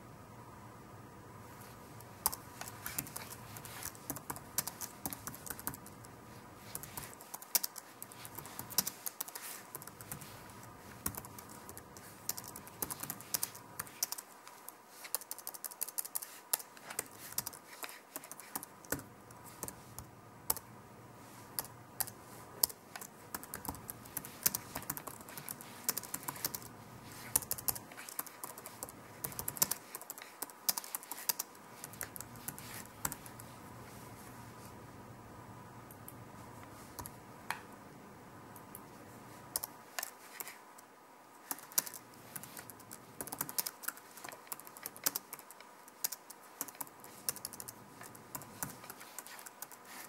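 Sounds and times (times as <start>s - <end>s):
computer keyboard typing: 2.0s - 20.7s, 21.6s - 33.5s, 39.5s - 40.6s, 41.4s - 50.0s.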